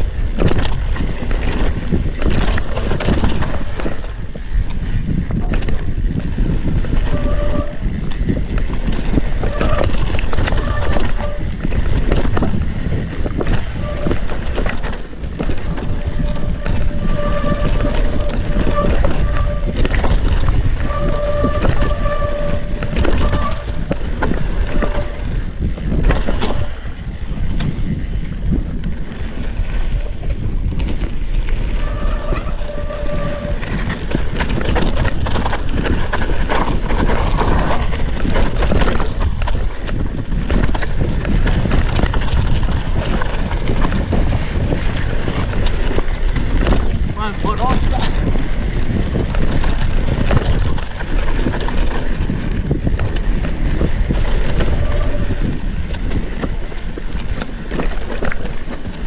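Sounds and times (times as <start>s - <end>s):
bike knocks and rattles: 0.0s - 59.0s
tyres over roots and rocks: 0.0s - 59.0s
wind on microphone: 0.0s - 59.0s
disc brakes squealing: 5.9s - 12.0s, 12.8s - 14.7s, 15.3s - 26.8s, 31.6s - 35.2s, 53.6s - 58.2s.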